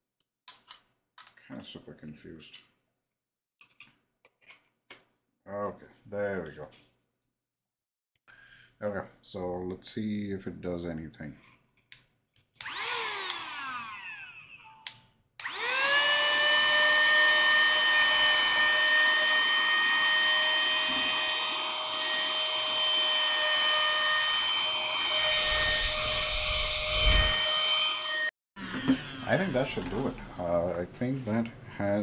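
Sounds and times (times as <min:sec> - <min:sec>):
handheld vacuum motor whining: 0:12.6 - 0:30.3.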